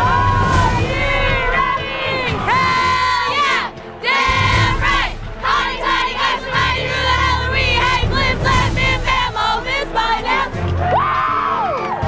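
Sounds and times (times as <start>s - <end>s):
young women shouting and chanting: 0.1s - 10.5s.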